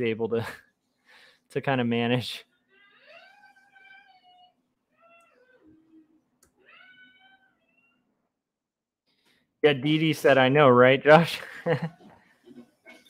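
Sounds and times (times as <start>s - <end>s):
young child crying out: 2.8s - 6.0s, 6.6s - 7.9s.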